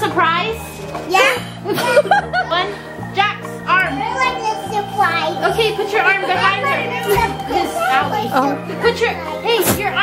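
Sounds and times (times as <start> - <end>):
background music with low notes: 0.0 - 10.0
young children chattering: 3.9 - 10.0.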